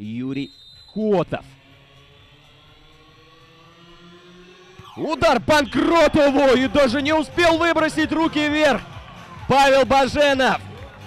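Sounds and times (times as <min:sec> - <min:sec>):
outdoor stadium ambience: 0:00.0 - 0:11.0
thin steady hum tones: 0:00.5 - 0:04.8.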